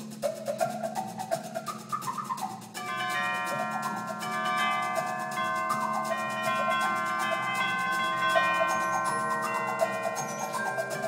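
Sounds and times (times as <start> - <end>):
wind band playing: 2.7 - 11.0.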